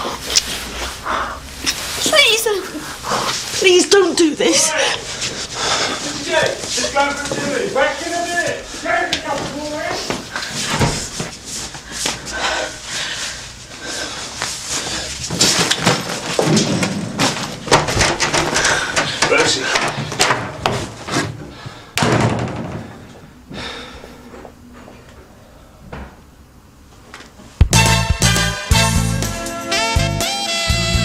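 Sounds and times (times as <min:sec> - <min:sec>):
scuffle knocks and thuds: 0:09.2 - 0:12.2, 0:15.2 - 0:21.4
loud slam: 0:22.0 - 0:22.9, 0:27.6 - 0:28.3.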